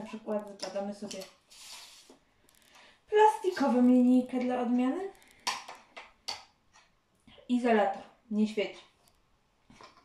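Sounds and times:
plastic ruler sliding on wooden table: 0:01.0 - 0:02.2.

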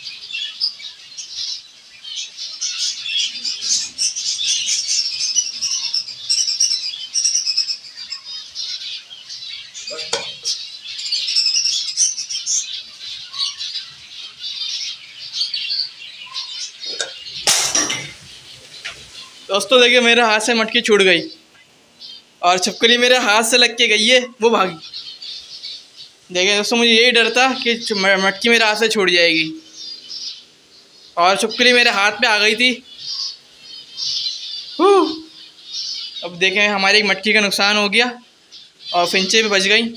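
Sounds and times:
finches chirping: 0:00.0 - 0:39.9
short voiced exclamation: 0:34.8 - 0:35.3.

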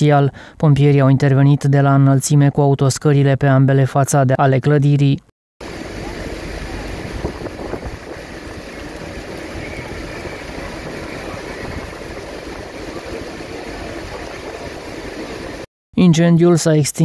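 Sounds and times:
wind hiss on microphone: 0:05.6 - 0:15.7.

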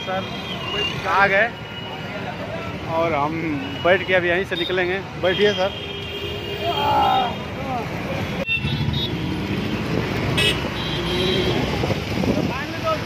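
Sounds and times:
road traffic engines running: 0:00.0 - 0:13.0
vehicle horn toots: 0:10.4 - 0:11.7.

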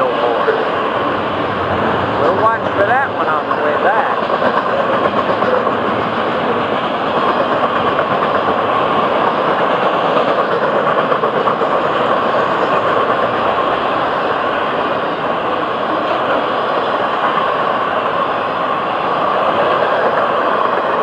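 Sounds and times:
train wheels on rail: 0:00.0 - 0:21.0.

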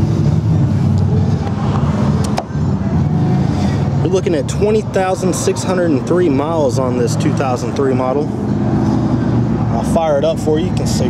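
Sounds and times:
engine running steadily: 0:00.0 - 0:11.0.

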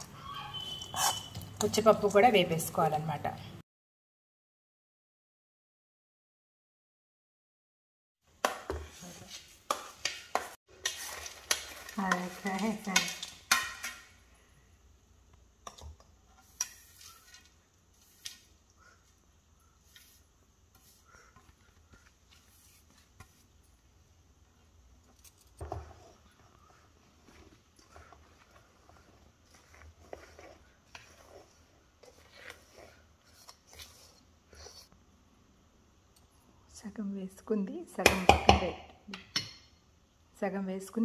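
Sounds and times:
hands mixing powder in steel bowl: 0:08.4 - 0:14.0, 0:15.6 - 0:23.9, 0:25.7 - 0:35.0
spoon scraping plate: 0:16.3 - 0:18.6, 0:27.2 - 0:34.9.

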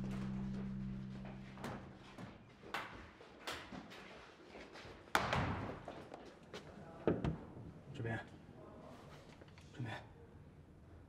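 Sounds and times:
low steady drone: 0:00.0 - 0:02.4.

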